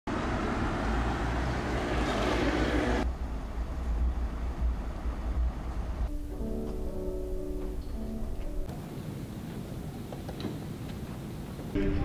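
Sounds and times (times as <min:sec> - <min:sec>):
road traffic rumble: 0:00.1 - 0:12.0.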